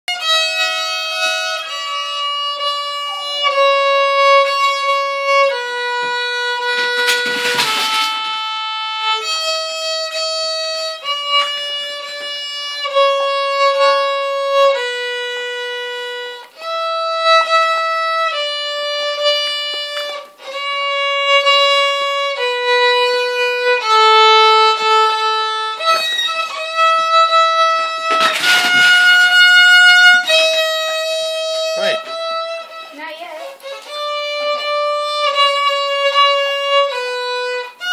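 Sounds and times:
two violins playing slow tune: 0:00.1 - 0:37.9.

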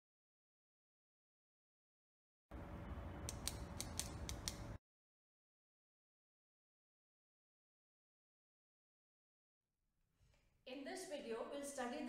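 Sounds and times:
sharp mechanical clicks: 0:03.3 - 0:04.8.

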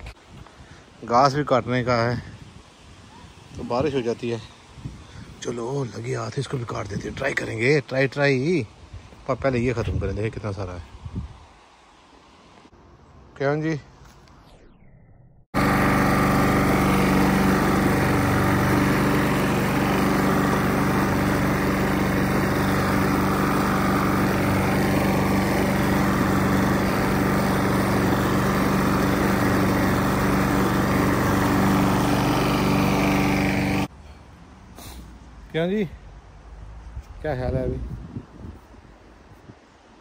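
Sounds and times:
lawn mower running: 0:15.6 - 0:33.9.

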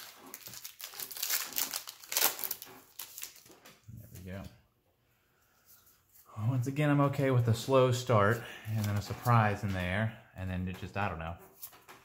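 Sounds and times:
wrapper crinkling and tearing: 0:00.0 - 0:03.7.

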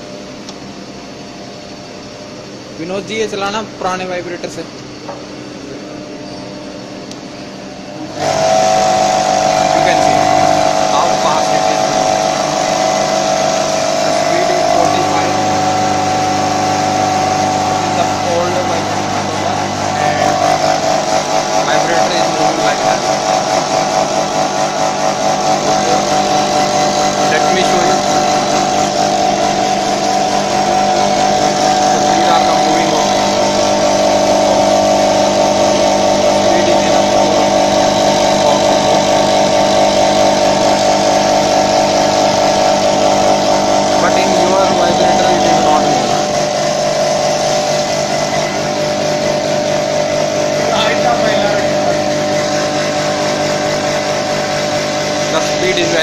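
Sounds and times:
vibratory bowl feeder buzzing: 0:00.0 - 0:56.0.

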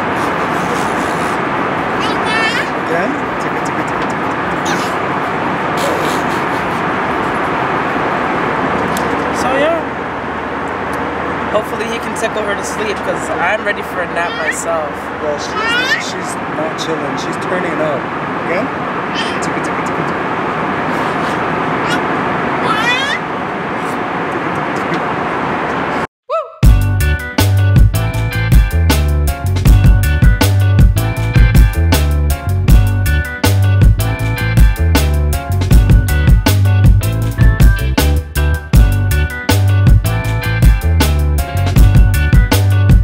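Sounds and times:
airliner cabin noise: 0:00.0 - 0:26.1
toddler squealing: 0:02.0 - 0:02.8, 0:14.1 - 0:16.3, 0:19.1 - 0:19.6, 0:21.8 - 0:23.3.

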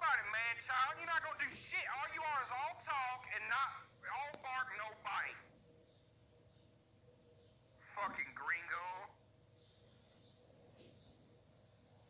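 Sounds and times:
person speaking over phone line: 0:00.0 - 0:05.6, 0:07.8 - 0:09.2.

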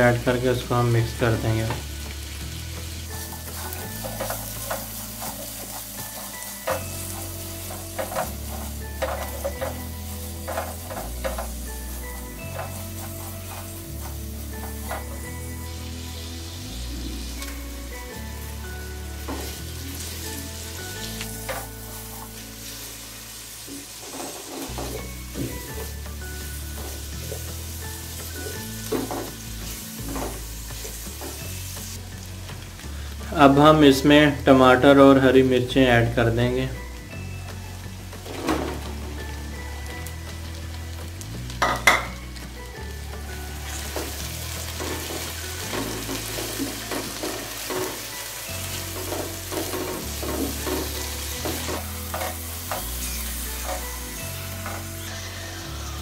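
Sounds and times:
onions sizzling in oil: 0:00.0 - 0:56.0
spatula scraping pan: 0:03.0 - 0:15.6.

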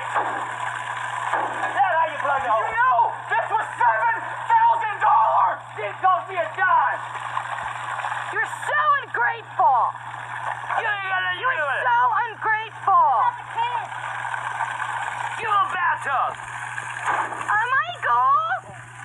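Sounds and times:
voices shouting excitedly: 0:01.8 - 0:07.0, 0:08.3 - 0:10.0, 0:10.7 - 0:14.0, 0:15.2 - 0:16.4, 0:17.5 - 0:18.8.

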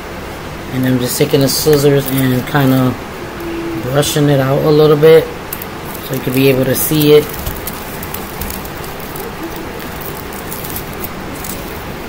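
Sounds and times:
steady background hiss: 0:00.0 - 0:12.0
rustling and crinkling of paper: 0:05.6 - 0:12.0.

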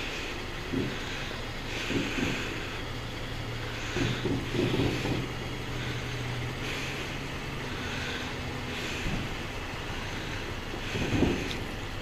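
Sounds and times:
heavy breathing through nose: 0:00.0 - 0:12.0
steady low hum: 0:00.0 - 0:12.0.

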